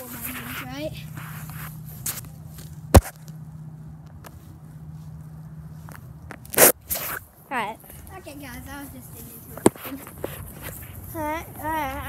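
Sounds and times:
steady low hum: 0.0 - 12.0
sharp crack: 1.5 - 3.4, 6.3 - 7.2.

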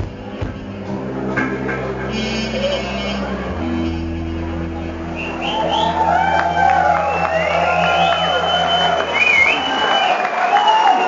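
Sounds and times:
crowd cheering and applauding: 4.9 - 11.0.

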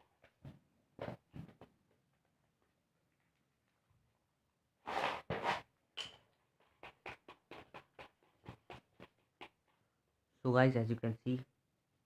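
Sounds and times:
cardboard tops scraping on paper: 4.8 - 5.7.

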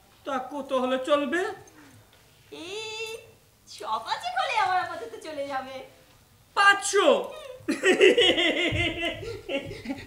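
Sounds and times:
person laughing rapidly: 7.6 - 10.0.

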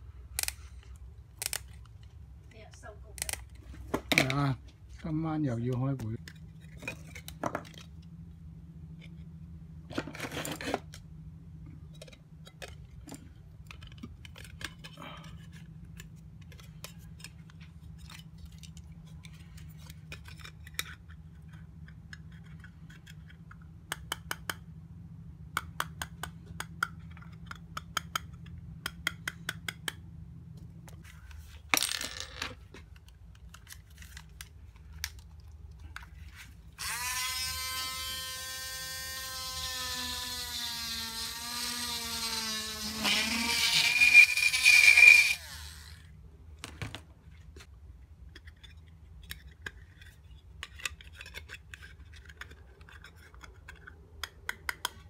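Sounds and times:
plastic discs clicking and tapping: 25.5 - 30.0, 48.4 - 55.0
handheld electric drill whining: 36.8 - 46.1.

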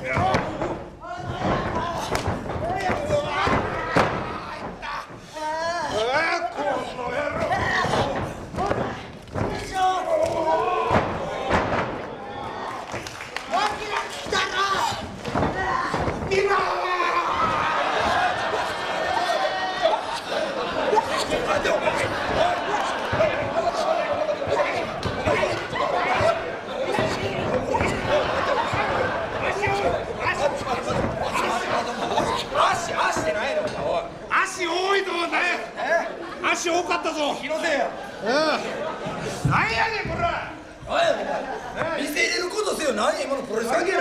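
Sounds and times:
people shouting: 0.0 - 33.3
audience chatter: 0.0 - 44.0
thud on wrestling ring: 10.8 - 12.1.

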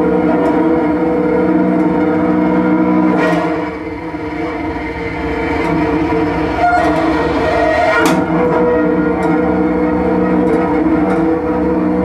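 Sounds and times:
bowed cello drone: 0.0 - 12.0.

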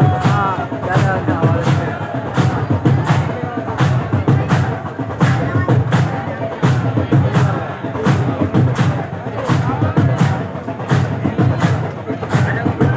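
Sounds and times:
man chanting a lament: 0.0 - 4.5
crowd chest-beating thumps: 0.0 - 12.9.

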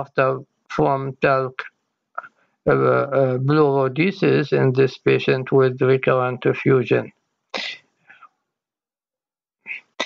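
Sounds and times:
person speaking: 0.0 - 7.8.

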